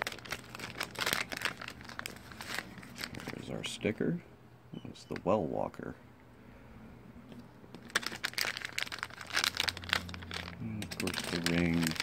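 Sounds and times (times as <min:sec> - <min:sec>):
foil pouch tearing and crinkling: 0:00.0 - 0:03.6, 0:07.8 - 0:12.0.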